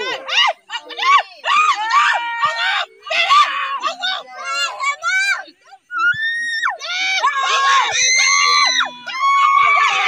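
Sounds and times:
spectators shouting and screaming: 0:00.0 - 0:10.0.

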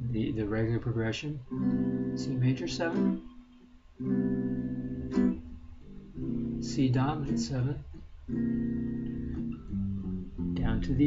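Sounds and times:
electric guitar chords: 0:01.4 - 0:11.0.

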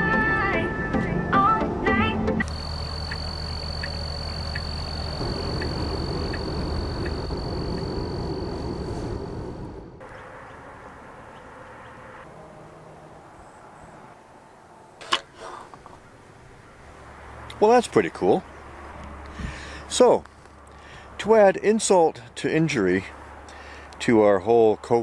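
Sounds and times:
car driving drone: 0:02.4 - 0:15.2.

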